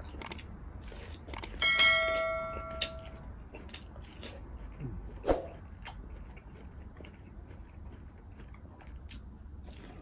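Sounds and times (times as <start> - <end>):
bell chime ding: 1.6 - 3.1.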